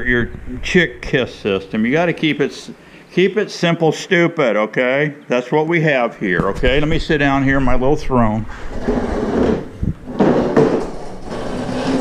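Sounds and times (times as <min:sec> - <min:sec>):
plastic chair scraping on concrete: 0:08.5 - 0:12.0.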